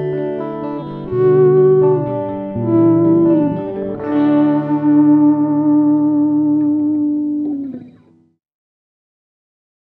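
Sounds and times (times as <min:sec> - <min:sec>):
guitar chord ringing with effects: 0:00.0 - 0:08.4.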